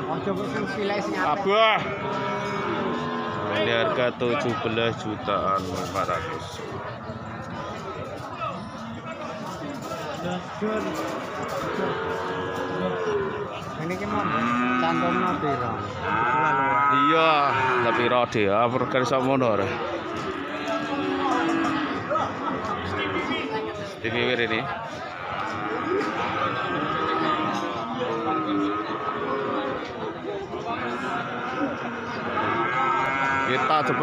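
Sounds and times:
cow mooing: 1.8s - 3.7s, 11.0s - 23.5s, 25.1s - 30.0s, 30.8s - 34.0s.

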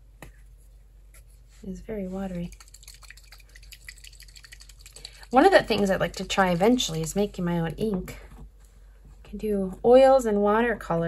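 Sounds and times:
ink stirred in pot: 2.0s - 7.5s.

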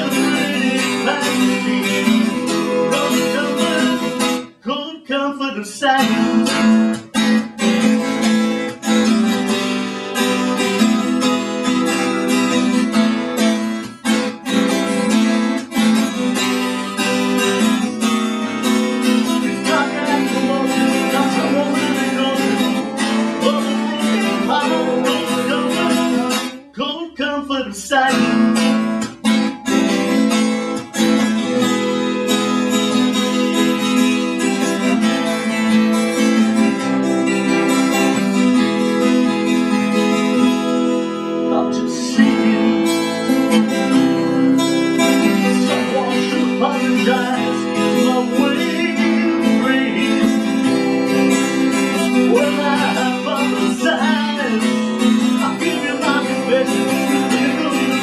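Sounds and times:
acoustic guitars strumming: 0.0s - 58.0s.

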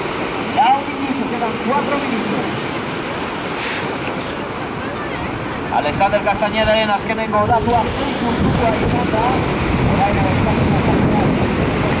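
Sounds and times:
waves breaking on shore: 0.0s - 12.0s
wind buffeting microphone: 0.0s - 12.0s.

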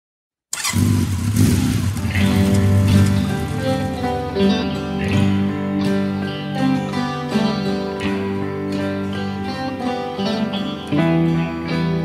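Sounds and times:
motorcycle engine starting: 0.5s - 5.4s
held instrumental notes: 2.0s - 12.0s.

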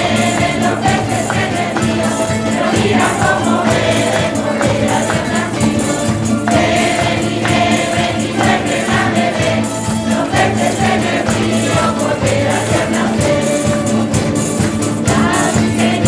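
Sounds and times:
folk choir singing: 0.0s - 16.0s
hand clapping: 0.0s - 16.0s
strummed guitars: 0.0s - 16.0s.

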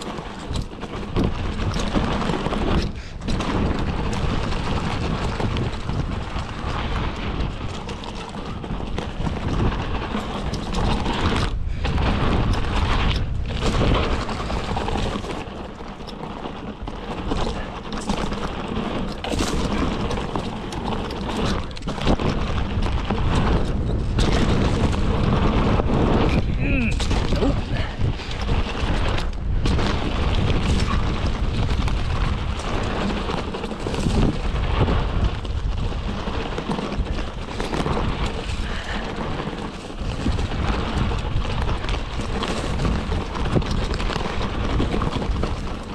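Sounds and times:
wind on microphone: 0.0s - 15.6s, 16.8s - 45.9s
bike tyres on dirt: 0.0s - 45.9s.

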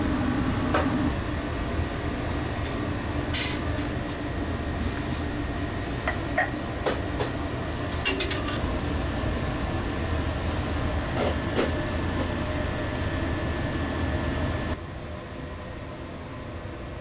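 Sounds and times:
machine hum with faint whine: 0.0s - 17.0s.

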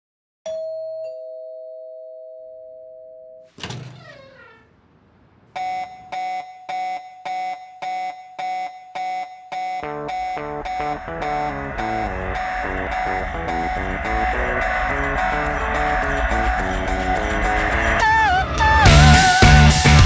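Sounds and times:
two-tone doorbell chime: 0.5s - 3.4s.

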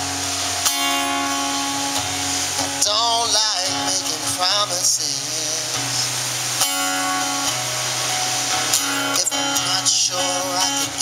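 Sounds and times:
acoustic guitar strumming: 0.0s - 11.0s
steady rushing noise: 0.0s - 11.0s.

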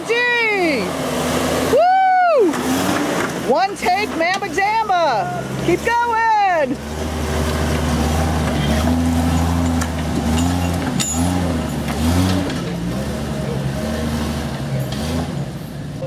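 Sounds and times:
engine pulling under load: 0.0s - 16.0s.

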